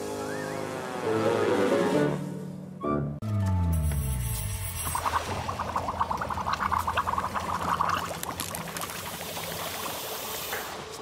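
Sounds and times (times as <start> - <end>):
fizzing hiss: 4.4 - 11.0
liquid bubbling in a glass: 4.8 - 10.5.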